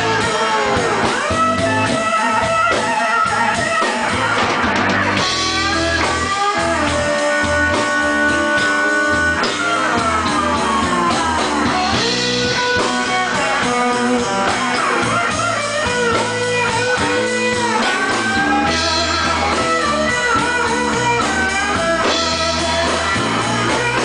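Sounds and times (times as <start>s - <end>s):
bass guitar: 0.0s - 24.0s
drum kit: 0.0s - 24.0s
electric guitar lead with bent notes: 0.0s - 24.0s.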